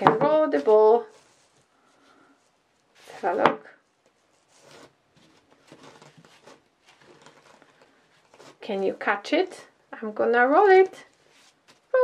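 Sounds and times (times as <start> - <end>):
soft rustles: 0.2 - 9.7, 10.7 - 12.0.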